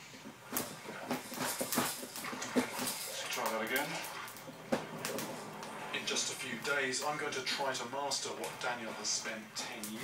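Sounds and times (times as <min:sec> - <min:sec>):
low television sound: 0:00.0 - 0:10.0.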